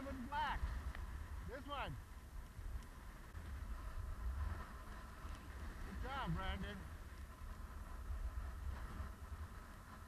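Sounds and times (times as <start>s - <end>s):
skis sliding over packed snow: 0.0s - 10.0s
wind buffeting microphone: 0.0s - 10.0s.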